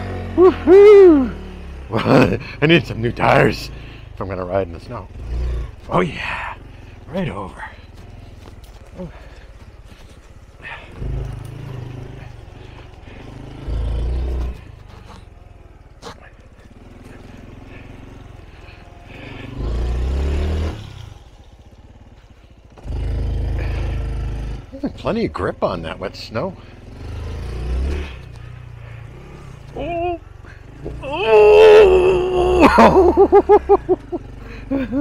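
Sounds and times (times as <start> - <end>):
motorcycle engine revving: 0.0 - 35.0
person exclaiming: 0.3 - 1.4, 29.7 - 30.3, 30.9 - 34.0.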